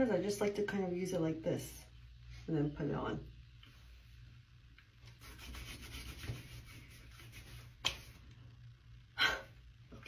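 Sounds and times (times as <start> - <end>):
fingers rubbing skin: 5.1 - 8.2.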